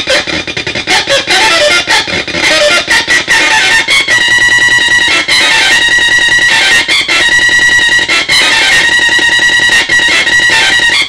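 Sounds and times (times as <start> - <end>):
chaotic electronic drone: 0.0 - 11.0.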